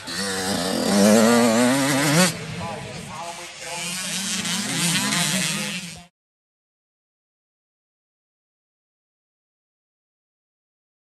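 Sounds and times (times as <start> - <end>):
dirt bike engine revving: 0.0 - 6.1.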